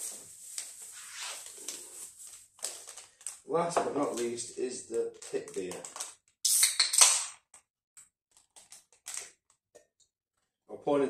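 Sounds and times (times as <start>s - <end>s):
beer can opening hiss: 6.4s - 7.3s.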